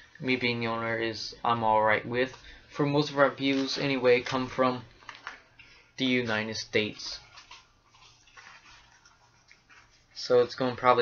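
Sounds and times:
rustling handling noise: 2.2 - 11.0.

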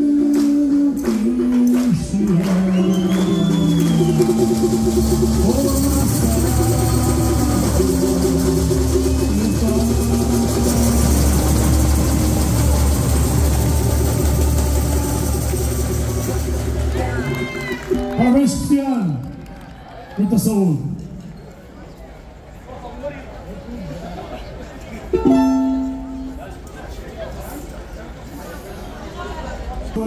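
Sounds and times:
group singing: 0.0 - 15.6.

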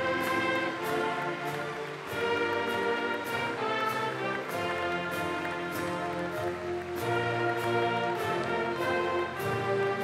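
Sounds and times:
slow orchestral music: 0.0 - 10.0.

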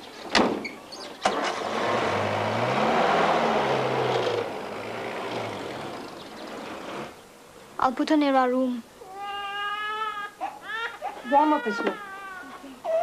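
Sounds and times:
car engine starting and pulling away: 1.0 - 7.2.

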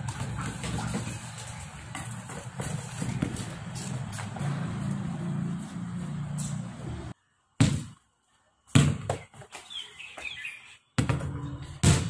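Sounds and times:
low motor hum: 0.0 - 7.2
outdoor background noise: 0.0 - 12.0.

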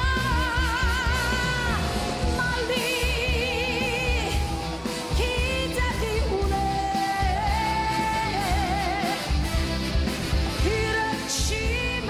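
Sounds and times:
woman singing pop song: 0.0 - 9.4, 10.6 - 12.0
band with steady bass beat: 0.0 - 12.0.

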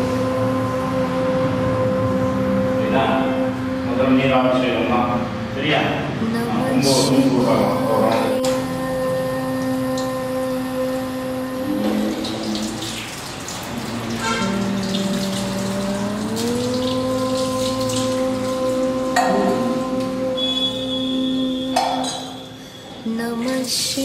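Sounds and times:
water splashing over stone: 11.9 - 18.6.

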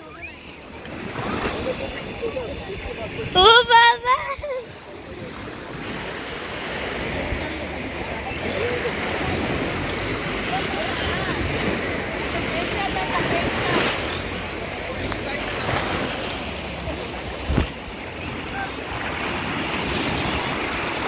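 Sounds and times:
faint voices of bathers: 0.0 - 21.0
sea water lapping: 0.0 - 21.0
wind on microphone: 0.0 - 21.0.

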